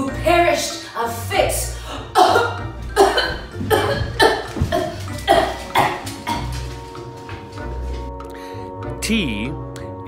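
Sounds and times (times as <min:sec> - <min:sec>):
woman coughing and choking: 0:02.1 - 0:06.6.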